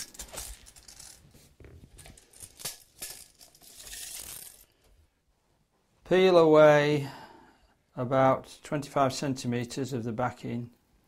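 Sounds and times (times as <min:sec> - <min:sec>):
rustling: 0:00.0 - 0:05.1.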